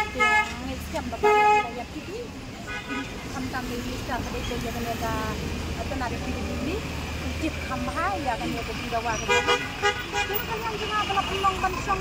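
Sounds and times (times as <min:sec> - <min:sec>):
vehicle horns honking: 0:00.0 - 0:00.6, 0:01.2 - 0:01.8, 0:02.6 - 0:03.2, 0:09.2 - 0:12.0
low rumble of engines: 0:00.0 - 0:12.0.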